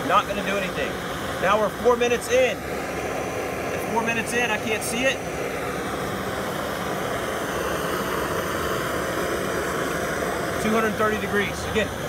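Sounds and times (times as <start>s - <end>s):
blowtorch hissing: 0.0s - 12.0s.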